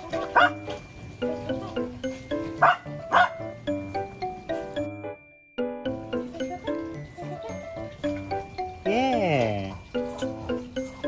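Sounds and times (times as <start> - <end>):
background music melody: 0.0 - 11.0.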